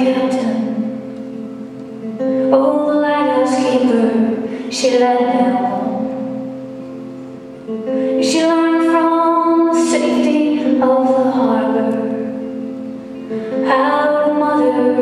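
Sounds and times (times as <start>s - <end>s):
woman singing folk song: 0.0s - 1.1s, 2.0s - 6.5s, 7.7s - 12.5s, 13.2s - 15.0s
acoustic guitar: 0.0s - 15.0s.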